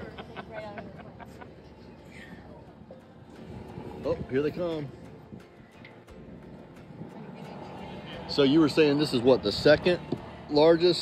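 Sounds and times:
faint voices talking: 0.0 - 11.0
low outdoor background noise: 0.0 - 11.0.

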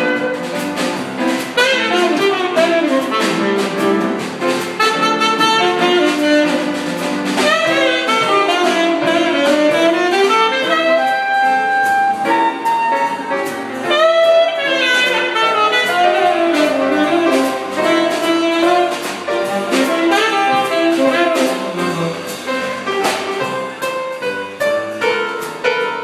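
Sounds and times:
tenor saxophone melody: 0.0 - 0.8, 1.4 - 23.6
drums: 0.0 - 26.0
piano chords: 0.0 - 26.0.

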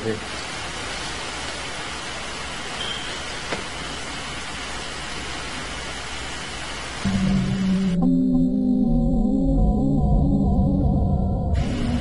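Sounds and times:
steady background hiss: 0.0 - 8.0, 11.6 - 12.0.

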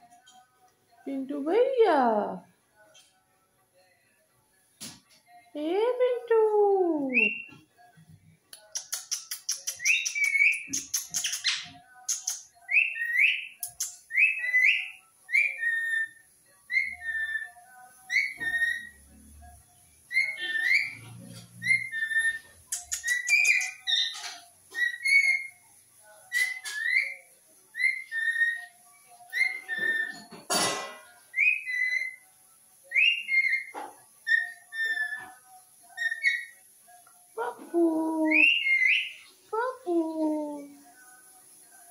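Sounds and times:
parakeet scratchy chattering: 8.7 - 12.5, 20.3 - 25.6
parakeet whistled chirps: 9.5 - 19.0, 20.1 - 21.0, 21.6 - 25.6, 26.2 - 28.7, 29.3 - 30.3, 31.3 - 32.2, 32.9 - 36.6, 38.4 - 39.3.

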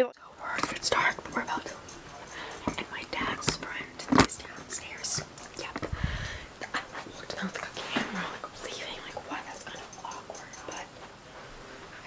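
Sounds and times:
person whispering: 0.2 - 5.9, 6.6 - 10.9.

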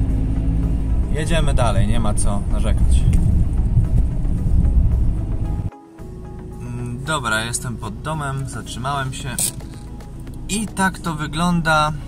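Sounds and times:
car engine and tyres rumbling: 0.0 - 12.0
engine idling hum: 0.0 - 12.0.

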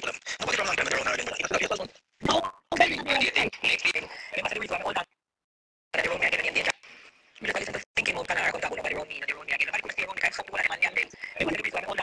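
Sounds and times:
person talking in croaky voice: 0.0 - 5.1, 6.0 - 6.8, 7.4 - 12.0.

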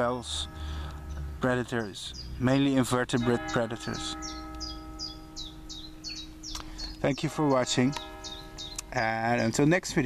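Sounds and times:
steady low hum: 0.0 - 10.0
small bird calling: 0.6 - 2.8, 3.8 - 9.7.

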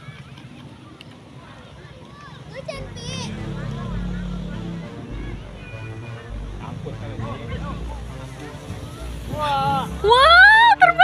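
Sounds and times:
faint voices talking and calling: 0.0 - 11.0.

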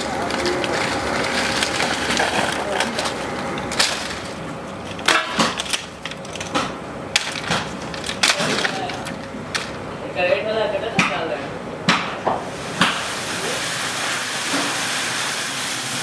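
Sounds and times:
plastic crates clattering: 0.0 - 10.0.

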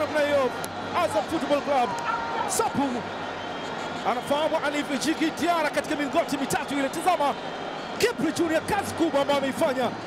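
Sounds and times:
football commentator's excited voice: 0.0 - 3.0, 4.0 - 7.4, 8.0 - 10.0.

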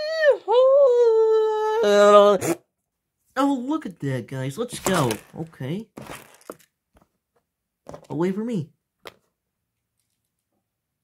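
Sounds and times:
plastic pieces rustling: 4.7 - 6.7.

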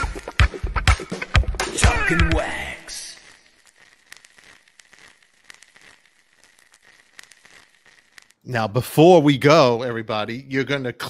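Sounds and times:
crackling clicks: 0.0 - 8.5
thin hiss: 0.0 - 8.5.

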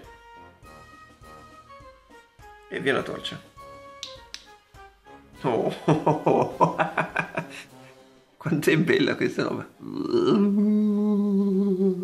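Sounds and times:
man humming: 9.8 - 12.0.

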